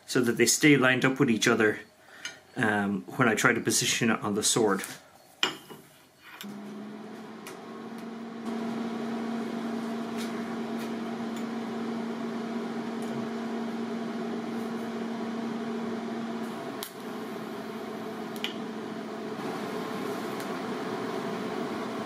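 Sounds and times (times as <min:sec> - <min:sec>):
welder electrical hum: 0:06.4 - 0:22.0.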